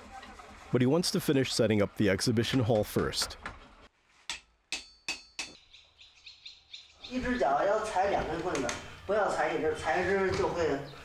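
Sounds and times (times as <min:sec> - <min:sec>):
hammer blows on anvil: 0:04.3 - 0:05.6
small birds chirping: 0:05.4 - 0:11.0.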